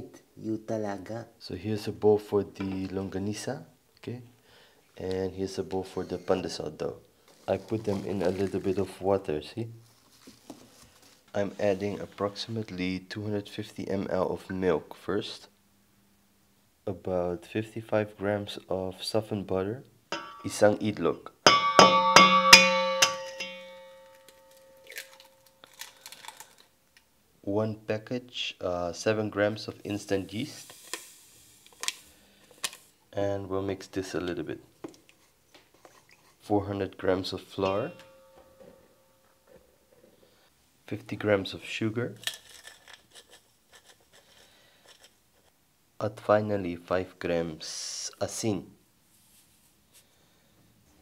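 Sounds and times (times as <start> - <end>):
egg tapping on metal bowl: 20.2 - 20.5, 21.5 - 24.6
bowl ringing: 20.2 - 20.8, 21.5 - 25.7, 37.5 - 39.4.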